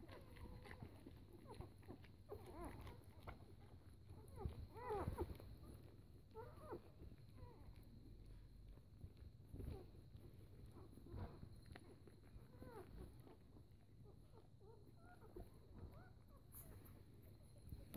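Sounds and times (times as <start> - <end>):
puppies squeaking and whimpering: 0.0 - 7.8, 8.7 - 17.2.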